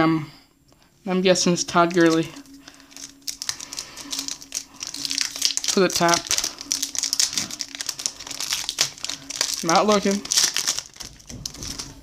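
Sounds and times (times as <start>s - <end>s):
cards and wrapper crinkling: 1.6s - 12.0s.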